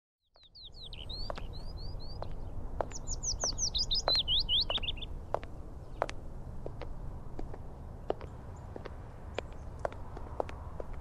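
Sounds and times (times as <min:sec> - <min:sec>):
songbirds chirping: 0:00.2 - 0:11.0
low outdoor rumble: 0:00.8 - 0:11.0.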